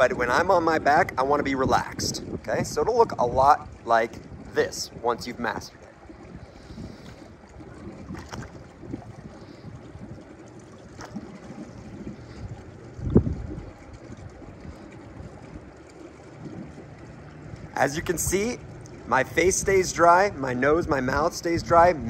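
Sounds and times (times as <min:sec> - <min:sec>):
pool water lapping: 0:00.0 - 0:22.0
wind on microphone: 0:00.0 - 0:22.0.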